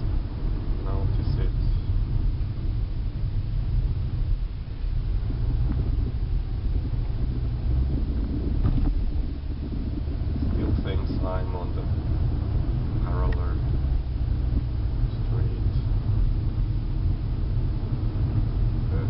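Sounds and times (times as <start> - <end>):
car engine and road rumble: 0.0 - 19.0.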